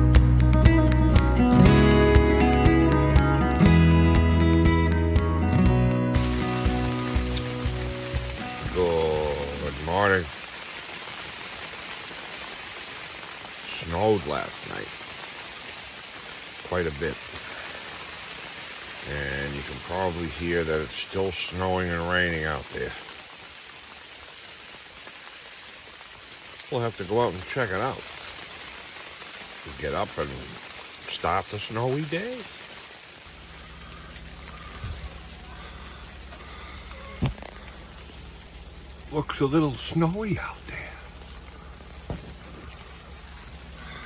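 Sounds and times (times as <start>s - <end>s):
rain and snow on tent fabric: 0.0s - 44.0s
low rumble: 33.3s - 39.3s.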